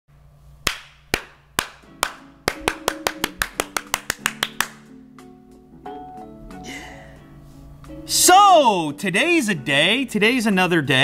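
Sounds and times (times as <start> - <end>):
hand claps: 0.6 - 5.0
backing music: 1.6 - 11.0.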